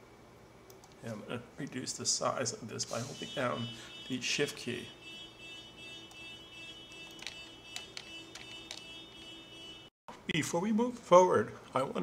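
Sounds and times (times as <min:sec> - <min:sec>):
mouse and keyboard clicks: 0:07.0 - 0:08.9.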